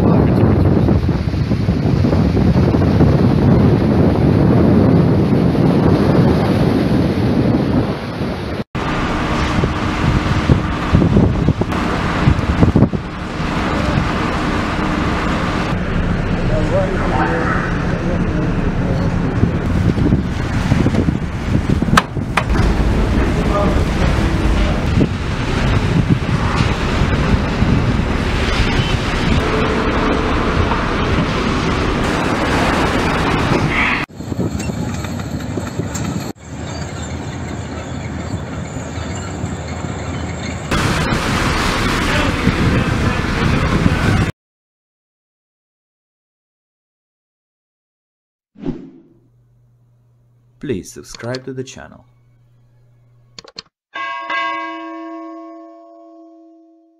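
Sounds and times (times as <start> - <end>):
heavy vehicle engine rumbling: 8.8 - 34.2
vehicle noise: 8.8 - 44.3
bell chime ringing: 54.0 - 56.9.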